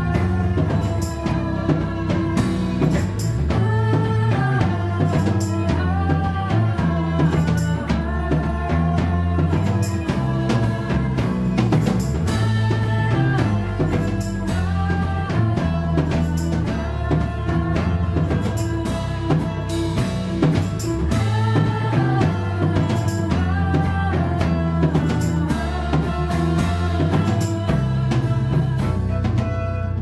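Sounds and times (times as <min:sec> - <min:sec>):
bowed violin: 0:00.0 - 0:30.0
drum kit beat: 0:00.0 - 0:30.0
electric guitar: 0:00.0 - 0:30.0
low bass line: 0:00.0 - 0:30.0.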